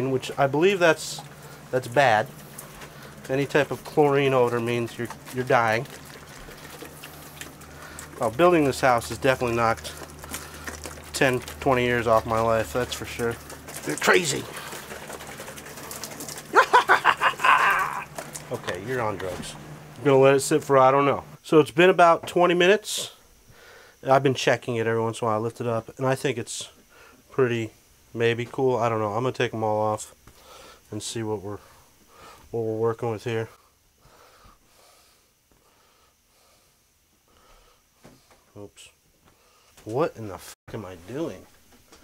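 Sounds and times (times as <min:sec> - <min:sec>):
faint breathing: 0:07.2 - 0:08.2, 0:23.5 - 0:24.0, 0:26.8 - 0:27.3, 0:30.3 - 0:30.9, 0:31.5 - 0:32.5, 0:33.5 - 0:38.5, 0:39.3 - 0:39.8
man laughing: 0:16.5 - 0:18.1.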